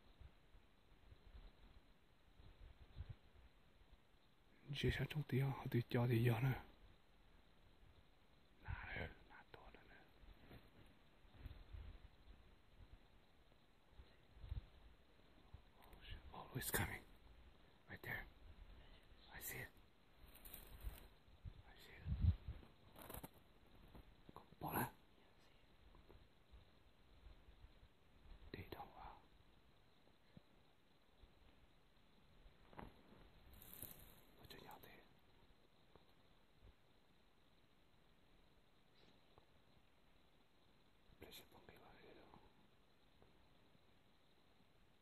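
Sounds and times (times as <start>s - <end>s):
faint whisper: 4.2s - 26.6s, 27.2s - 30.5s, 33.6s - 35.9s, 41.1s - 43.3s.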